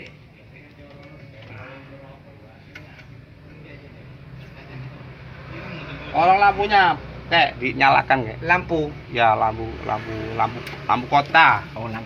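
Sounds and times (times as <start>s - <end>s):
faint voices talking: 0.0s - 12.0s.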